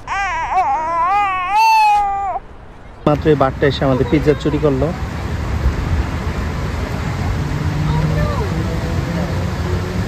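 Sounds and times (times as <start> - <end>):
baby crying: 0.0 - 2.5.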